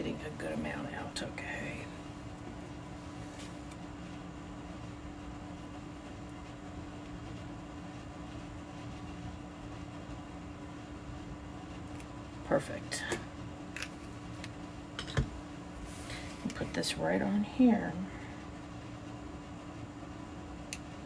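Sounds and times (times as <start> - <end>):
background hum and hiss: 0.0 - 21.0.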